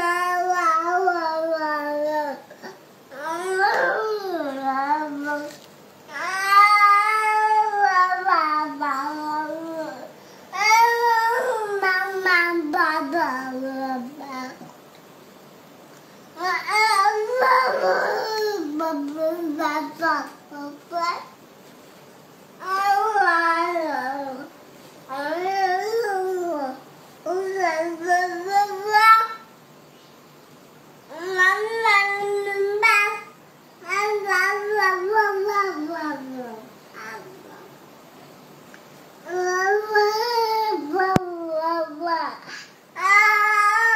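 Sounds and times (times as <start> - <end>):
baby moaning sing-song: 0.0 - 14.8, 16.4 - 21.4, 22.6 - 29.6, 31.1 - 37.8, 39.2 - 43.9.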